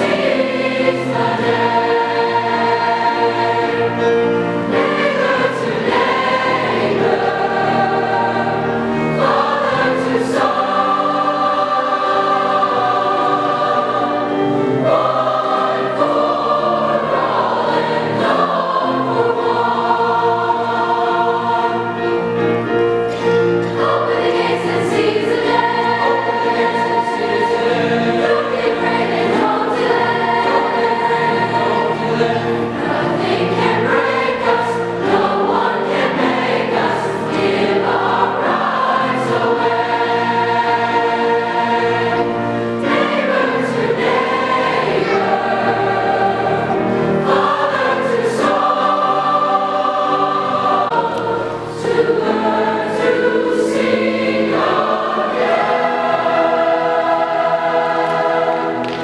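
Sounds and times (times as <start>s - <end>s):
choir singing in harmony: 0.0s - 59.0s.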